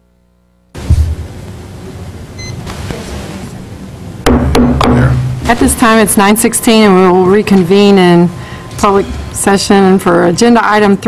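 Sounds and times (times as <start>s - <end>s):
low hum: 0.0s - 2.6s
room noise: 0.0s - 11.0s
microphone being tapped: 0.8s - 1.6s.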